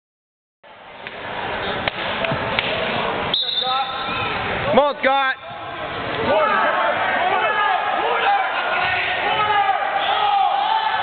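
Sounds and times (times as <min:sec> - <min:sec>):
murmur of spectators: 0:00.7 - 0:11.0
people shouting: 0:05.6 - 0:11.0.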